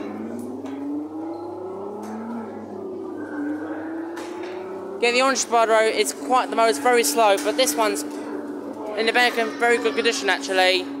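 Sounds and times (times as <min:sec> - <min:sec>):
car engine revving sound effect: 0:00.0 - 0:08.8
steady low hum: 0:00.0 - 0:11.0.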